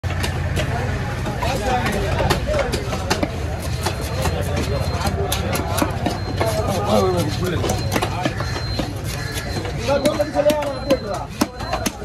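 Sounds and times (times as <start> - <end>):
sharp knocks: 0.1 - 12.0.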